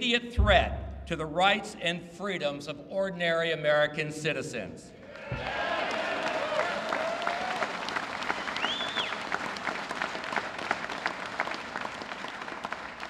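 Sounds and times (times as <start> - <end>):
audience applauding: 5.2 - 13.0
high whistle: 8.5 - 9.2.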